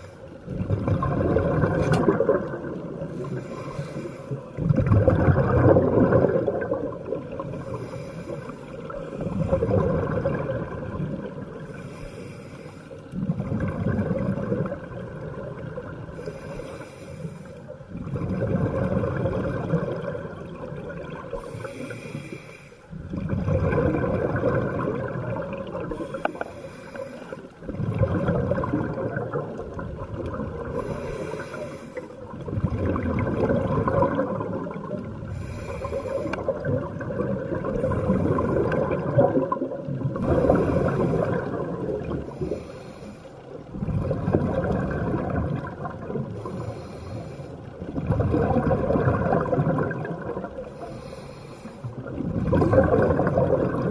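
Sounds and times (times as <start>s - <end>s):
regulator hiss on inhale: 0.0s - 0.4s, 3.0s - 4.6s, 7.4s - 9.5s, 11.5s - 13.2s, 16.1s - 17.8s, 21.3s - 23.0s, 25.9s - 27.7s, 30.6s - 32.4s, 35.2s - 36.6s, 40.2s - 41.6s, 42.2s - 43.6s, 46.3s - 47.9s, 50.6s - 52.2s
bubbling rumble on exhale: 0.0s - 3.8s, 4.5s - 12.0s, 13.1s - 16.8s, 17.7s - 22.1s, 22.9s - 53.9s.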